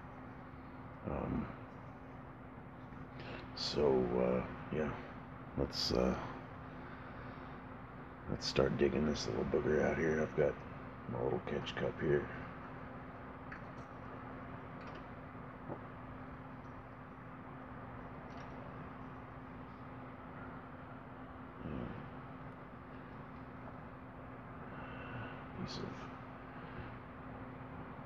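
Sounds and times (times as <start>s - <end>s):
low room hum with constant tone: 0.0s - 28.0s.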